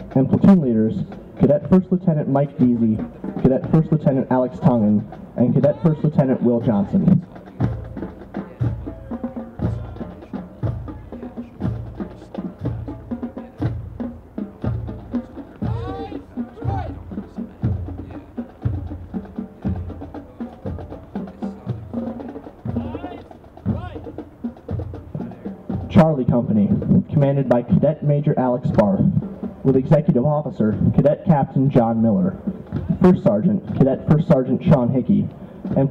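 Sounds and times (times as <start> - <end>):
bass drum beat: 0.0 - 35.9
military band playing march: 0.0 - 35.9.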